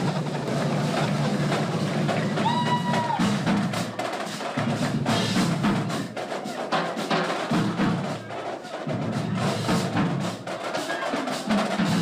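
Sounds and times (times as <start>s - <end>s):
drums playing a beat: 0.0s - 12.0s.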